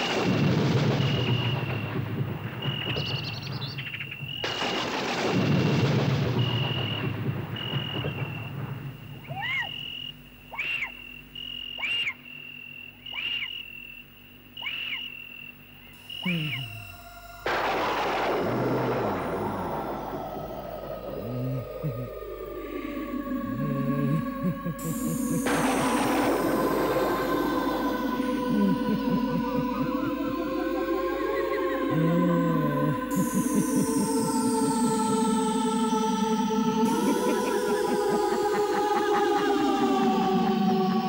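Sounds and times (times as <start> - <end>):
wavering animal-like call: 9.2 - 12.2, 13.0 - 13.7, 14.6 - 15.2, 16.0 - 18.2, 18.8 - 41.0
high-pitched whine: 16.0 - 41.0
low drone: 16.0 - 41.0.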